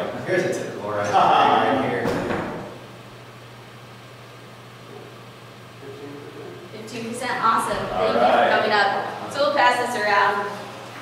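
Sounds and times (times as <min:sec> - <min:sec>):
steady low hum with hiss: 0:00.0 - 0:11.0.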